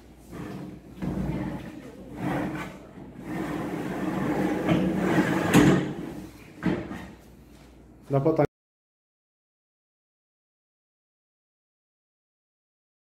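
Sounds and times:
bed frame rolling and scraping: 0:00.0 - 0:07.2.

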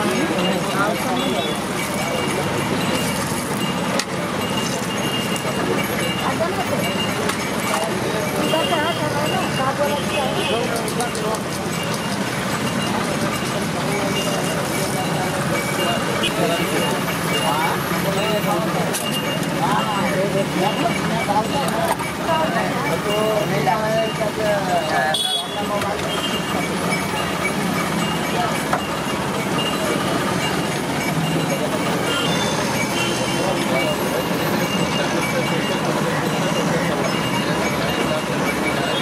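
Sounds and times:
chatter of voices: 0:00.0 - 0:39.0
steady traffic noise: 0:00.0 - 0:39.0.

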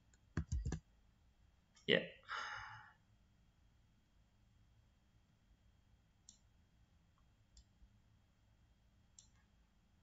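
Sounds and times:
computer mouse clicks: 0:00.1 - 0:00.8, 0:06.2 - 0:06.5, 0:09.1 - 0:09.5.

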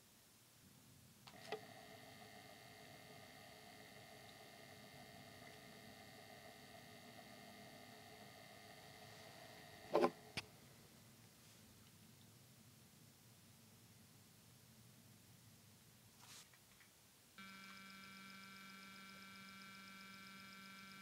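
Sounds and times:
faint steady motor hum: 0:01.2 - 0:11.3, 0:17.4 - 0:21.0.

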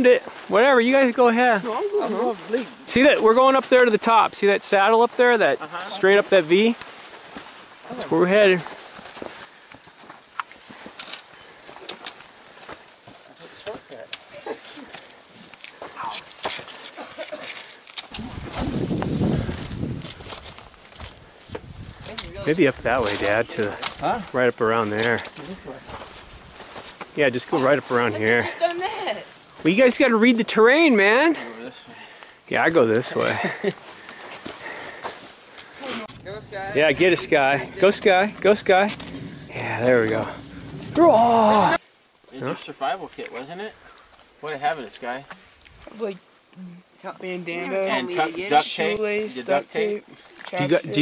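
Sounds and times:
light rustle: 0:05.8 - 0:29.7
low rumble: 0:36.1 - 0:41.8.

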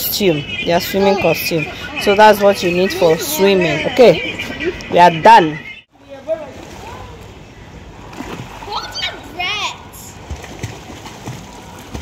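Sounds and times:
water splashing from swimming: 0:06.3 - 0:07.4, 0:08.0 - 0:12.0.

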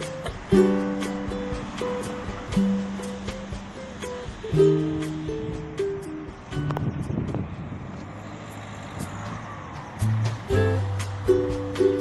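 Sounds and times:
car passing close by: 0:00.0 - 0:12.0
road noise: 0:00.0 - 0:12.0.

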